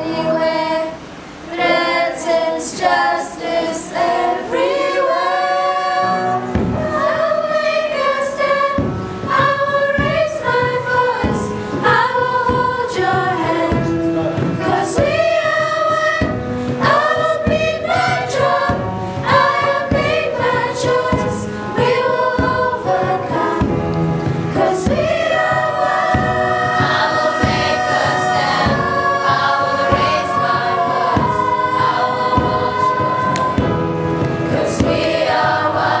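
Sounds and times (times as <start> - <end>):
children's choir singing: 0.0 - 36.0.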